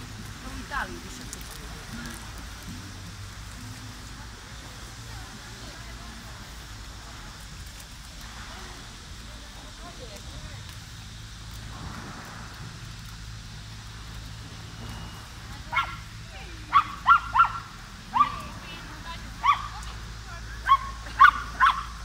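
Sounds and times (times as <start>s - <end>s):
small dog yapping: 15.7s - 16.1s, 16.7s - 18.5s, 19.4s - 19.9s, 20.6s - 22.0s.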